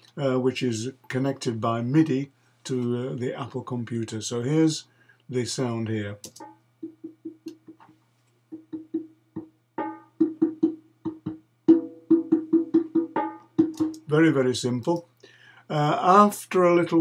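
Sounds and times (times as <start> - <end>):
conga hand-drum hits: 6.4 - 7.8, 8.5 - 14.1.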